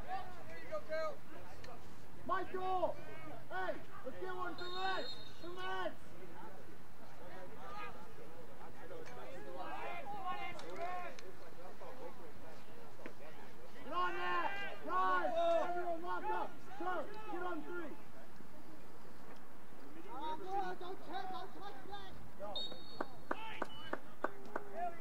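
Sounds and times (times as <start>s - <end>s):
people shouting calls: 2.2s - 6.0s, 13.8s - 18.1s, 20.0s - 25.0s.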